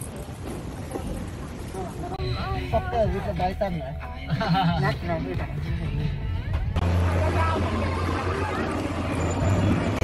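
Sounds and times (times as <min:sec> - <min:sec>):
indistinct voices of passers-by: 0:00.0 - 0:10.0.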